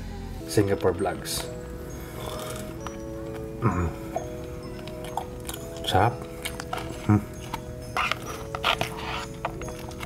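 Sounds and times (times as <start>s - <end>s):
soft background music: 0.0s - 10.0s
plastic utensil scraping paper box: 7.9s - 10.0s.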